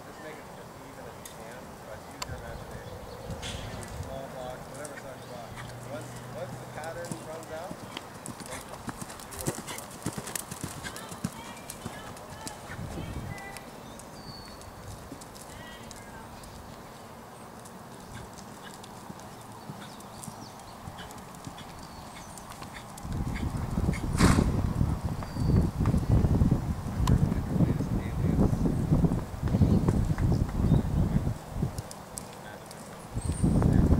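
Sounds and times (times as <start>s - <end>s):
horse hoofbeats on sand: 6.5s - 13.6s, 17.9s - 24.6s.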